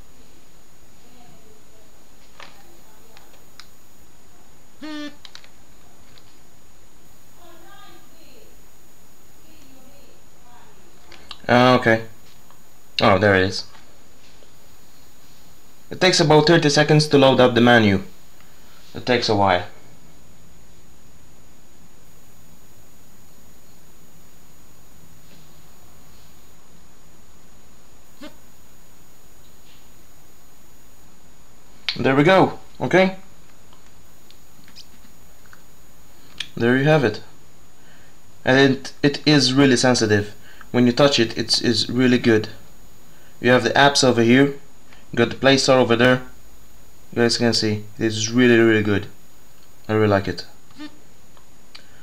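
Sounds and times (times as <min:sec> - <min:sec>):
recording hiss: 0:00.0 - 0:52.0
thin high whine: 0:00.0 - 0:52.0
short pitched tone: 0:04.8 - 0:05.2.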